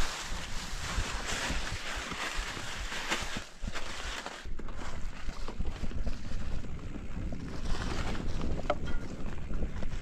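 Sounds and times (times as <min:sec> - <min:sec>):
bike rattling: 0:00.0 - 0:10.0
bike tyres rumbling on dirt: 0:00.0 - 0:10.0
wind buffeting microphone: 0:04.4 - 0:10.0.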